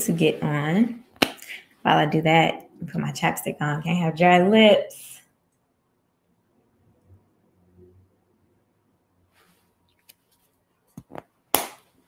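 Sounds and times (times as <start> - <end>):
sharp clicks and smacks: 1.2 - 1.5, 10.9 - 12.0.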